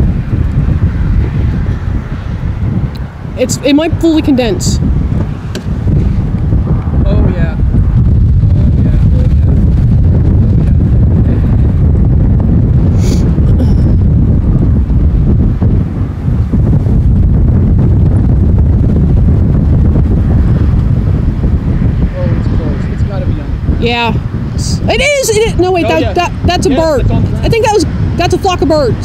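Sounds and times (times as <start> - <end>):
wind buffeting microphone: 0.0 - 29.0.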